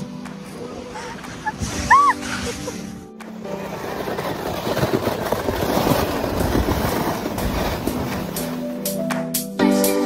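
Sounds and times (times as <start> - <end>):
toboggan sliding over snow: 0.4 - 9.0.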